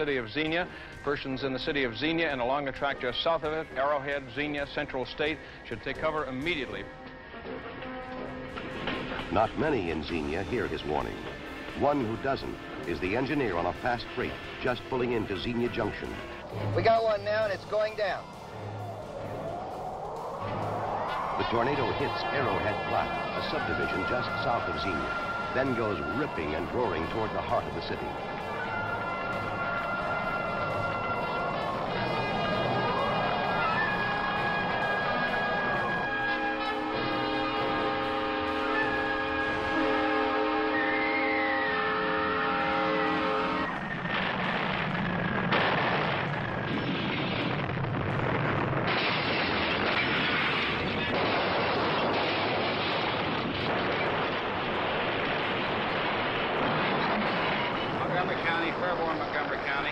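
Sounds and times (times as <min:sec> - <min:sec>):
tornado roar: 0:08.4 - 0:59.9
wavering rising and falling tones: 0:15.8 - 0:45.5
horn-like chord: 0:21.4 - 0:43.8.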